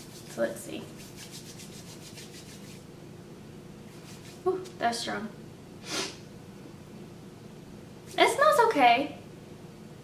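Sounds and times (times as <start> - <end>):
rhythmic rubbing of plastic bottle: 0.0 - 2.9.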